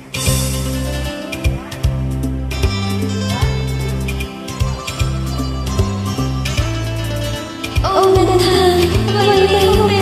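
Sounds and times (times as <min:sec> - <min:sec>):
held bass notes: 0:00.0 - 0:10.0
plucked string notes: 0:00.0 - 0:10.0
woman singing: 0:07.8 - 0:10.0.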